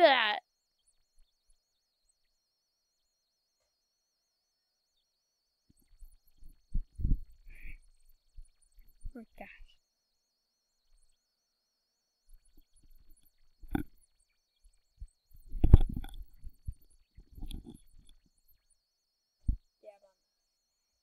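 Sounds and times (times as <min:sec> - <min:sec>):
person breathing: 0:07.4 - 0:07.9.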